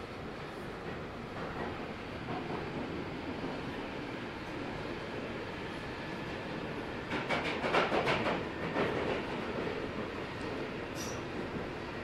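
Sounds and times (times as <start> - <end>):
train rumbling in tunnel: 0.0 - 12.0
rapid train clattering: 0.7 - 12.0.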